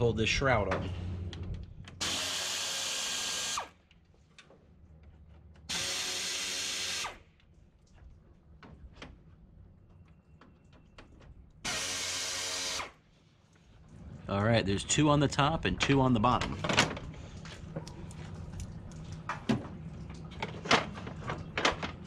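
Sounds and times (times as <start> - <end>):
power drill running: 2.0 - 3.8, 5.7 - 7.2, 11.6 - 13.0.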